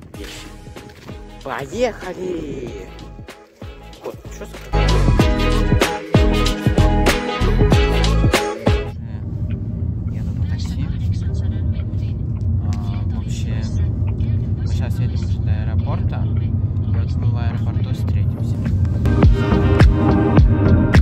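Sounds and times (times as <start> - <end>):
car cabin road rumble: 8.9 - 19.1.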